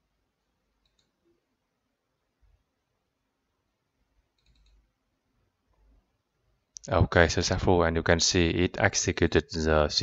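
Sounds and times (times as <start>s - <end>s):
faint computer mouse clicks: 0.8s - 1.2s, 4.4s - 4.8s
man speaking: 6.8s - 10.0s.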